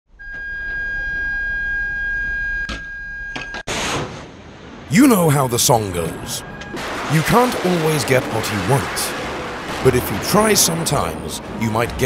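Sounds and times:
missile launch rocket blast: 3.7 - 4.8.

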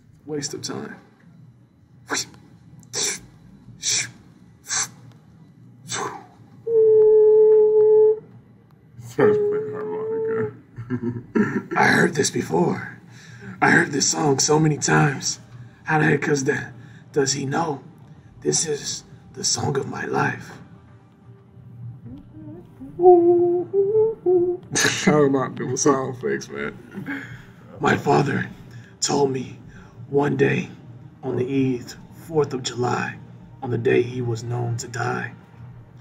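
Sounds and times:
speech: 0.2 - 1.1, 9.0 - 10.6, 11.8 - 17.8, 18.4 - 20.6, 27.7 - 35.4
person sounding long held notes: 6.6 - 8.3, 9.2 - 10.6, 22.0 - 24.9
man humming: 6.7 - 8.2, 9.2 - 11.0, 22.0 - 24.9.

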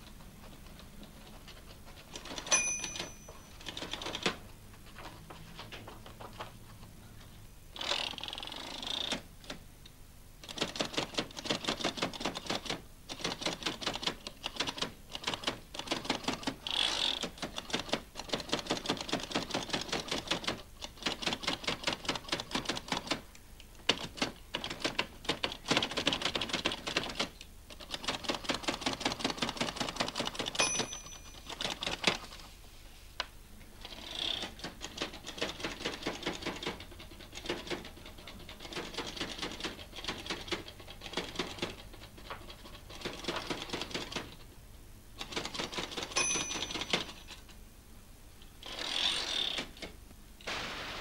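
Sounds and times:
end-of-line bell: 2.5 - 3.6, 30.6 - 31.5, 46.2 - 47.0.

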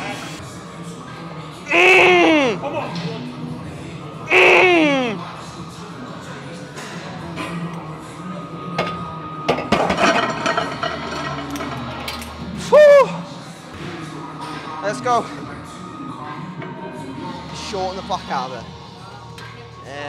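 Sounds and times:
background music: 0.0 - 5.8
strained vocal cry: 1.7 - 2.9, 4.3 - 5.3.

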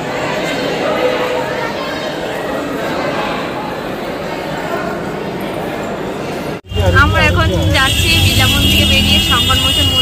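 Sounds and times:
voices: 6.6 - 10.0
vehicle rumbling on road: 6.7 - 10.0.

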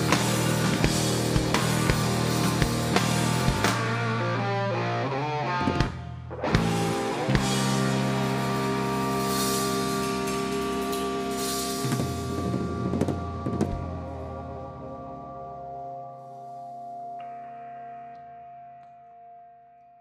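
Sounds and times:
instrumental rock band: 0.0 - 18.8.

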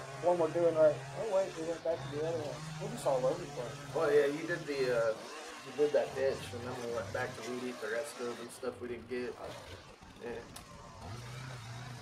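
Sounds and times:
string trimmer engine running: 0.0 - 12.0.

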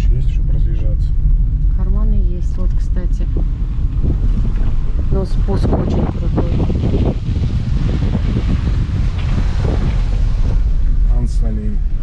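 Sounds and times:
car engine and tyres rumbling: 0.0 - 12.0
wind buffeting microphone: 0.0 - 12.0.

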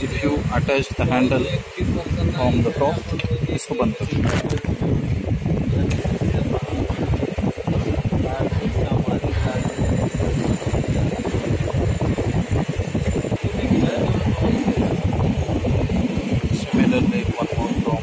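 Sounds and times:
indistinct voices: 0.0 - 18.0
steady background noise: 0.0 - 18.0
faint high whine: 8.8 - 18.0.

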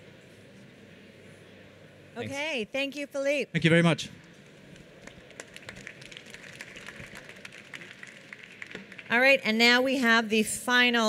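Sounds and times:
light scattered applause: 4.9 - 9.5.

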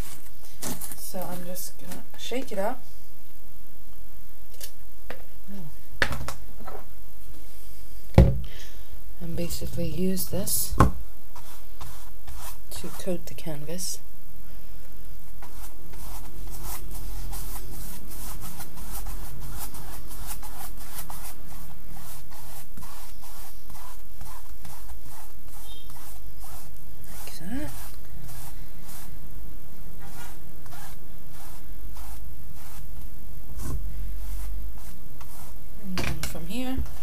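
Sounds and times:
paintbrush strokes on canvas: 0.0 - 1.7, 11.3 - 14.0, 15.3 - 35.7.

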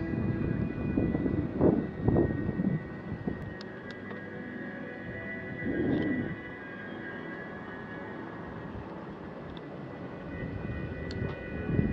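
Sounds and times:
wind noise on microphone: 0.0 - 3.7, 5.0 - 6.6, 8.4 - 11.9.

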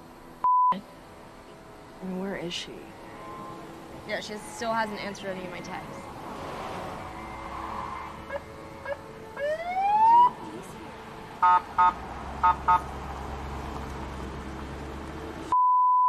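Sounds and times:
police siren whoop: 6.9 - 10.4.

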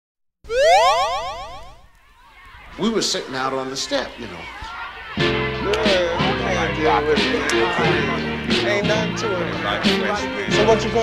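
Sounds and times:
springy boing sound effect: 0.5 - 1.8.

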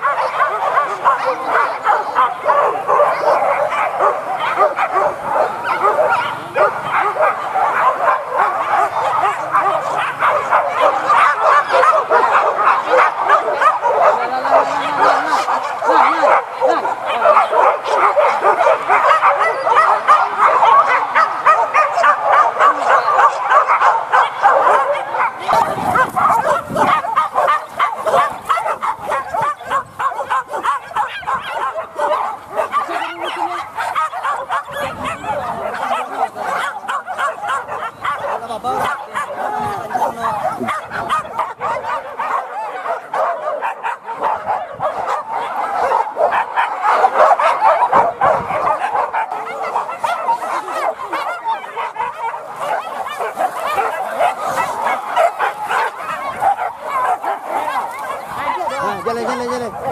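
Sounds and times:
pack of dogs barking: 0.0 - 59.9.

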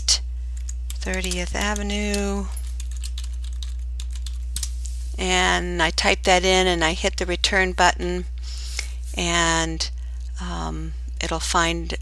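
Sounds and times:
low electrical hum: 0.0 - 12.0
computer keyboard typing: 0.6 - 4.7.

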